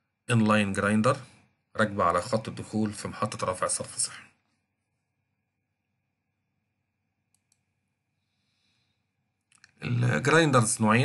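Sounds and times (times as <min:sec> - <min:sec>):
computer mouse clicks: 0:07.3 - 0:07.7.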